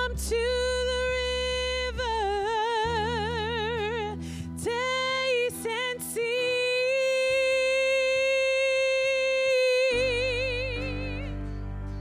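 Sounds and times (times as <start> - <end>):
acoustic guitar: 0.0 - 12.0
bass guitar: 0.0 - 12.0
woman singing: 0.0 - 12.0.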